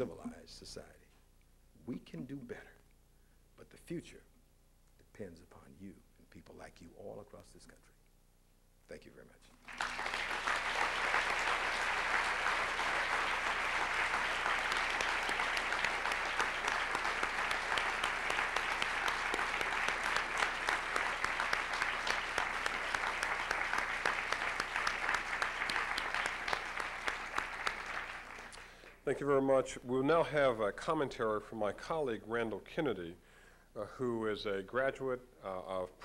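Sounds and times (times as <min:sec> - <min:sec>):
audience applauding: 0:09.6 - 0:29.0.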